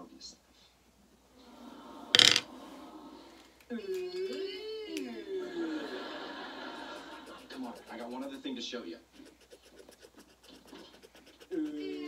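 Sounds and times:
faint scratching of coloring strokes: 3.7s - 12.0s.

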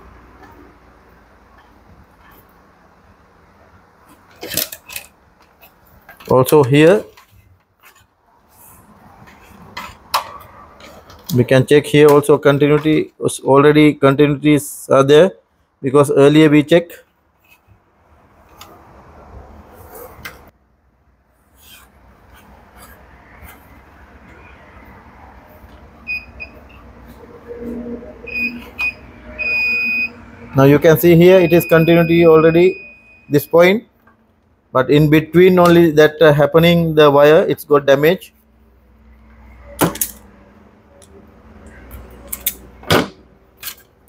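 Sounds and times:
wires and test probes rubbing: 21.4s - 24.3s
wire stripper clicking and snipping: 39.8s - 40.2s, 41.9s - 42.7s.

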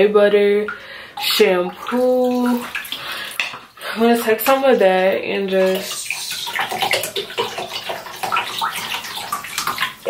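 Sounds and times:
water trickling into bathtub: 0.4s - 10.0s.

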